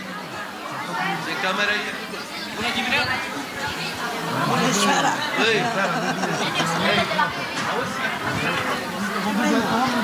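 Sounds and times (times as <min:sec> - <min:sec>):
several people talking: 0:00.0 - 0:10.0.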